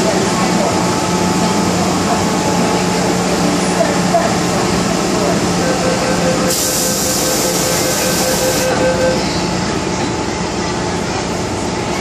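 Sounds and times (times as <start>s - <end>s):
ventilation hum: 0.0s - 12.0s
rapid pulsing warning beeps: 5.3s - 9.5s
train doors sliding shut: 6.5s - 8.7s.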